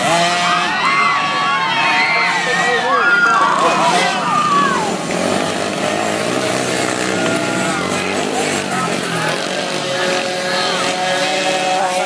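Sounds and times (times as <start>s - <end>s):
dirt bike engines revving: 0.0s - 12.0s
spectators shouting: 0.0s - 12.0s.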